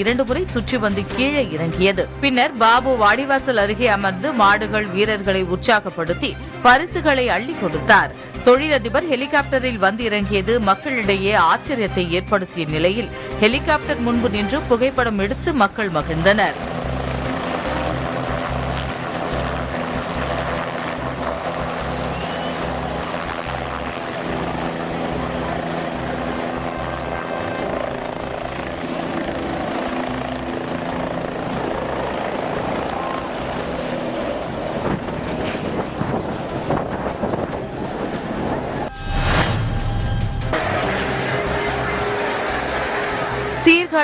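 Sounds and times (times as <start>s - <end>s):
helicopter rotor beating: 0.0s - 38.9s, 39.8s - 44.0s.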